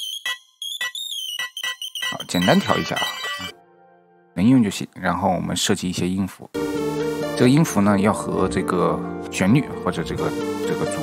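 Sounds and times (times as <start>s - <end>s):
synthesizer beeping notes: 0.0s - 3.7s.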